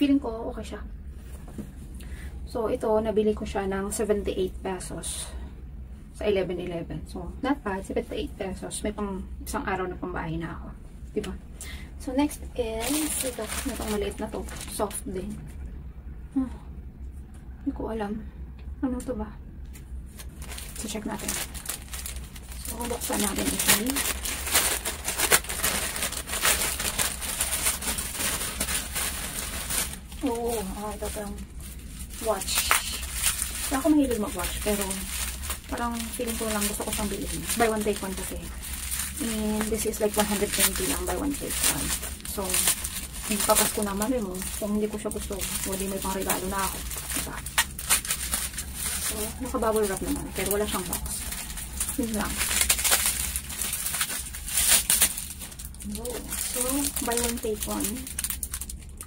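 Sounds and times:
plastic packaging crinkling: 0:12.3 - 0:15.7, 0:19.7 - 0:59.0.

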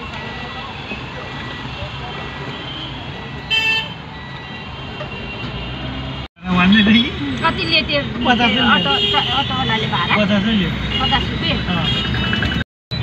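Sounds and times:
city traffic noise: 0:00.0 - 0:13.0
vehicle horn: 0:08.2 - 0:09.6.

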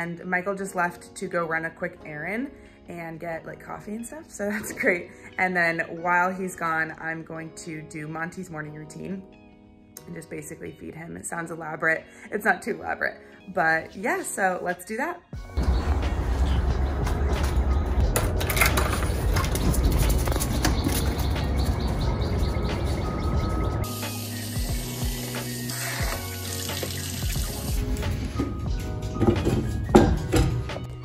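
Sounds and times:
background music: 0:00.0 - 0:31.0.

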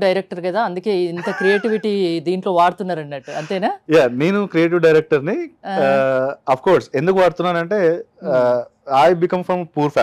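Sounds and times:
woman talking: 0:00.0 - 0:04.2, 0:05.7 - 0:06.1.

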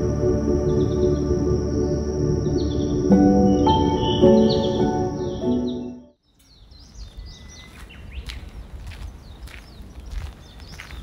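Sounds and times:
background music: 0:00.0 - 0:06.2
birds chirping: 0:00.6 - 0:11.0.

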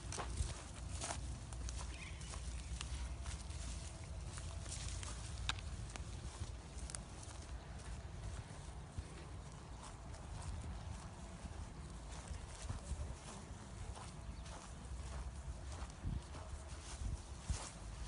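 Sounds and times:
footsteps through long grass: 0:00.0 - 0:18.0.

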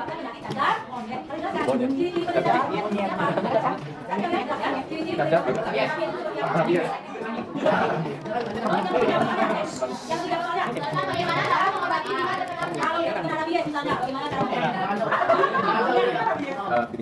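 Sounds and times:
students chattering: 0:00.0 - 0:17.0.

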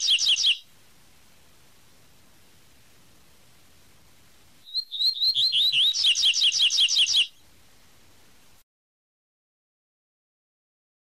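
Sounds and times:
bird singing high gliding whistles: 0:00.0 - 0:00.7, 0:04.6 - 0:07.5.

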